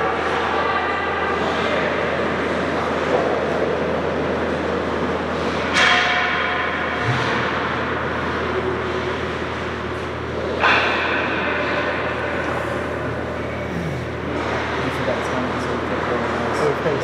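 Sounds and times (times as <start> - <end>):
ice rink arena noise: 0.0 - 17.0.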